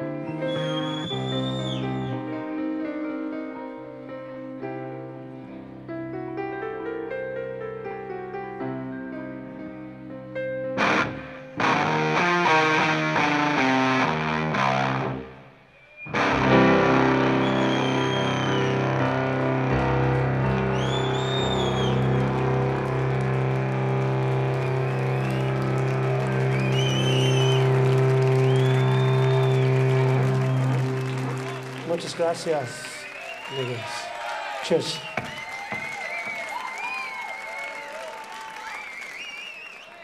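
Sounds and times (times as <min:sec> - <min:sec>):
distorted electric guitar: 0:10.8 - 0:15.4, 0:16.1 - 0:31.8
live rock band playing: 0:10.8 - 0:15.4, 0:16.1 - 0:32.6.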